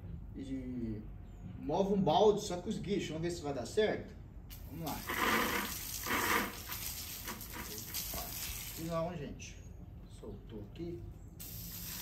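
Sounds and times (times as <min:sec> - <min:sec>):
water jet spraying: 0:04.5 - 0:09.0, 0:11.4 - 0:12.0.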